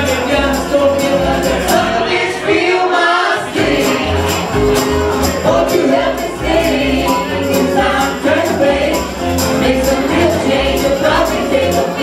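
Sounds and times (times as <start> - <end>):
drums: 0.0 - 2.2, 3.5 - 12.0
upright bass: 0.0 - 2.4, 3.5 - 12.0
guitars: 0.0 - 2.5, 3.5 - 12.0.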